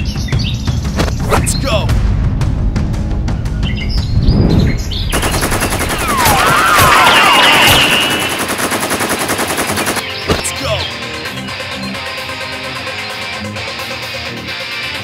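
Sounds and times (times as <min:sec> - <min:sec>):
sweeping whistling sounds: 0:03.7 - 0:08.5
blaster fire: 0:04.0 - 0:10.5
automatic gunfire: 0:05.1 - 0:10.5.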